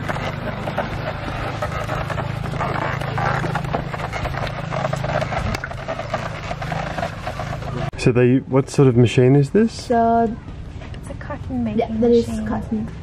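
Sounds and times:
wooden cart knocking and creaking: 0.0s - 8.0s
low hum: 0.0s - 8.7s.

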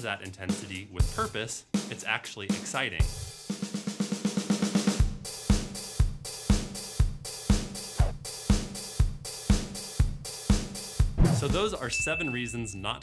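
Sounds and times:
kick drum beat: 5.0s - 11.8s
snare drum roll: 8.0s - 8.2s, 11.2s - 11.8s.

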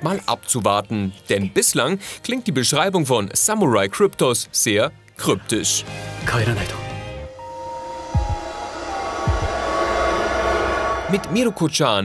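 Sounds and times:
droning notes: 7.3s - 12.0s
whoosh of noise: 7.6s - 12.0s
deep falling boom: 7.9s - 12.0s.

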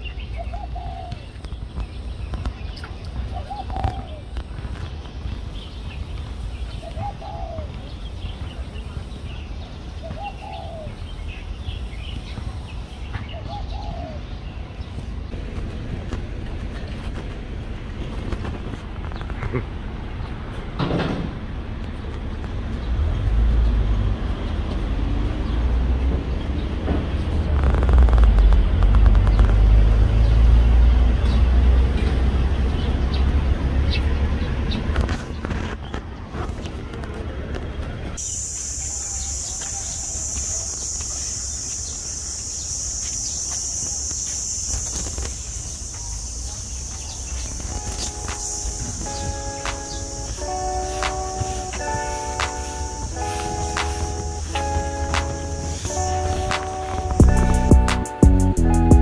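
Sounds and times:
bird calls: 0.0s - 15.4s, 38.2s - 57.9s
steady high hiss: 38.2s - 58.9s
loud low rumble: 53.0s - 59.0s.

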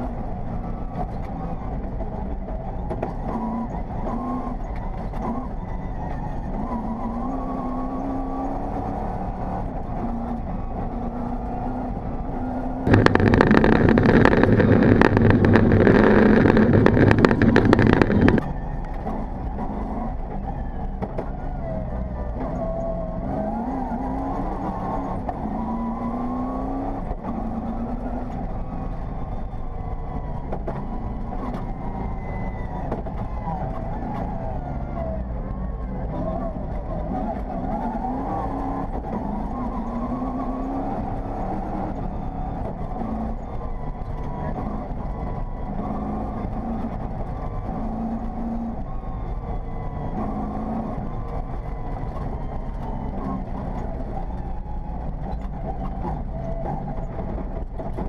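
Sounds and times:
rally car engine revving: 0.0s - 58.0s.

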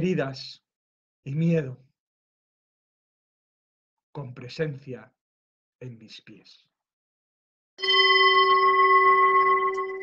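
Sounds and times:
singing bowl ringing: 7.8s - 10.0s.

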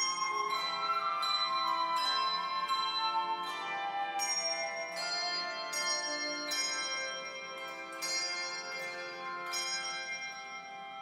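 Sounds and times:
flute playing: 0.0s - 7.5s
handbell choir ringing chords: 0.0s - 11.0s.

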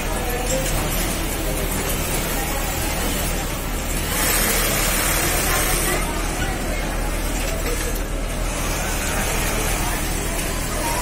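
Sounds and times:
sewing machines whirring: 0.0s - 11.0s.

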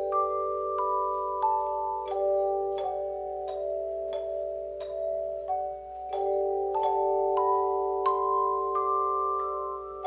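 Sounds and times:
handbell choir ringing: 0.0s - 10.0s.

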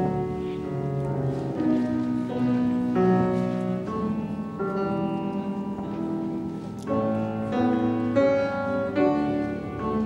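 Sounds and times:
grand piano slow piece: 0.0s - 10.0s.

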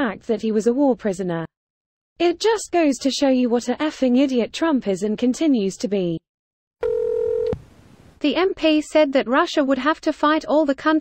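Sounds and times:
click: 7.4s - 7.6s.

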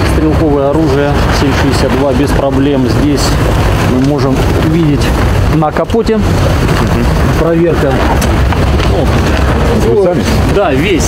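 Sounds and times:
microphone handling rumble: 0.0s - 11.0s.

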